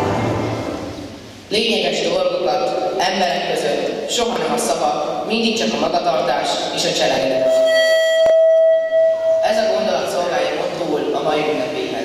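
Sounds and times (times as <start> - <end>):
microphone feedback whistle: 7.3 - 9.7.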